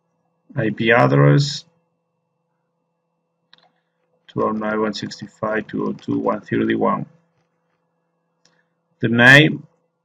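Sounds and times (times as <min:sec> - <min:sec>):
faint computer mouse click: 0:03.5 - 0:04.5.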